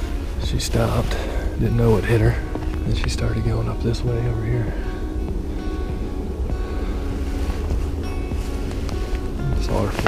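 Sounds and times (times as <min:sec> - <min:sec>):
soft background music: 0:00.0 - 0:10.0
wind buffeting microphone: 0:00.0 - 0:10.0.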